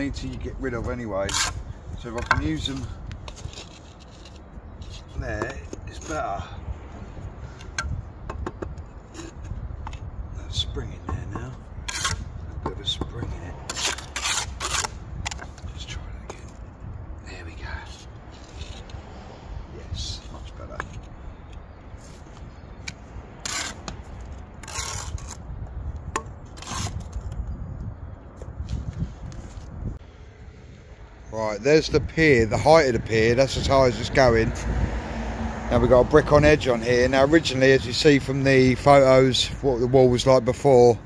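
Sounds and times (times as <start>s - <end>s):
steady low rumble: 0.0s - 35.0s
trowel scraping mortar: 0.2s - 6.3s, 11.4s - 12.3s, 13.7s - 15.6s, 23.4s - 25.4s, 26.5s - 27.4s.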